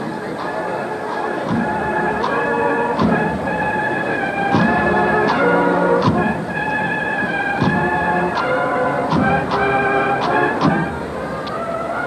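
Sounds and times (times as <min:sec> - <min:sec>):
band playing march: 0:00.0 - 0:12.0
drum strike: 0:01.4 - 0:03.5, 0:04.5 - 0:06.5, 0:09.1 - 0:10.9.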